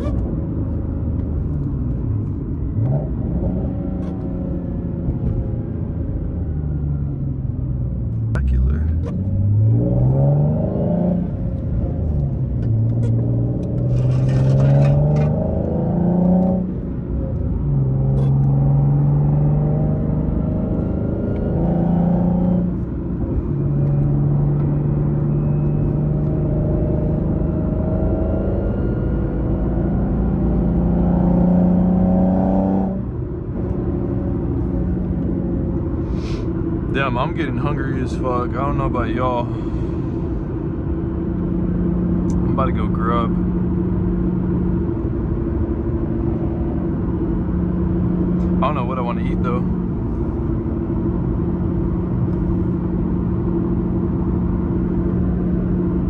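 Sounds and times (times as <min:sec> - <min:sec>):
car engine revving: 0:08.4 - 0:56.0.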